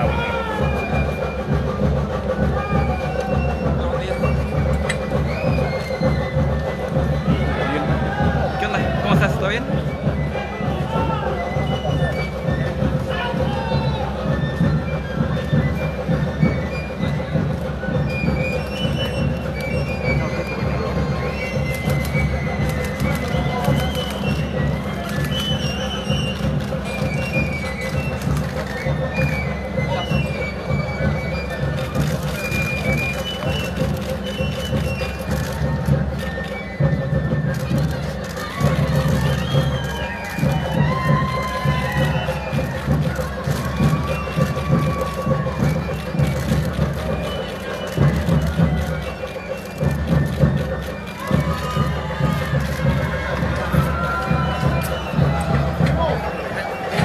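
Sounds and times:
crowd voices and shouts: 0.0s - 57.0s
music: 0.0s - 57.0s.

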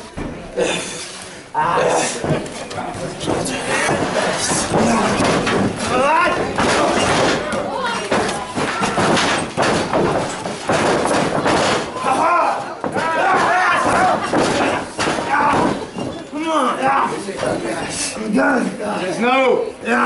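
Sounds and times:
bodies thudding on ring canvas: 2.1s - 16.3s
voices shouting: 11.9s - 17.3s.

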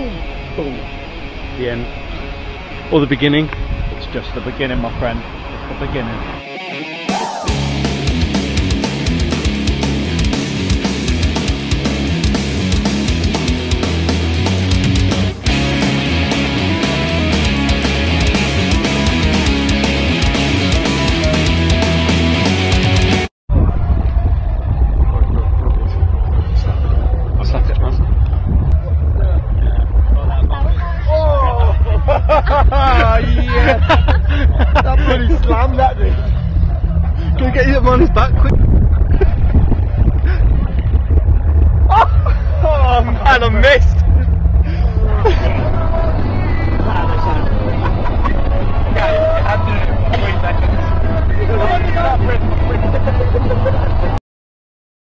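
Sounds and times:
people talking: 0.0s - 0.9s, 1.5s - 2.0s, 2.9s - 6.3s, 25.0s - 28.2s, 28.8s - 38.6s, 41.9s - 54.2s
heavy low rumble: 0.0s - 6.4s, 7.4s - 54.2s.

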